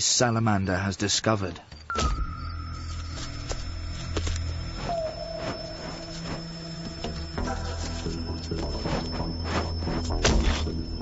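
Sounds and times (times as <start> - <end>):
soft drone music: 2.2 - 11.0.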